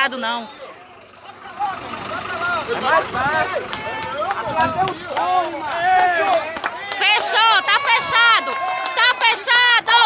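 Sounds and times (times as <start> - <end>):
bus engine running: 0.0 - 10.0
people talking over one another: 0.0 - 10.0.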